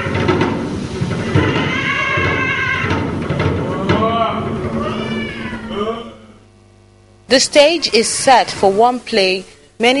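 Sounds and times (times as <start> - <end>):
low steady hum: 0.0 - 10.0
cat-like meowing cry: 1.2 - 3.0, 4.7 - 6.2.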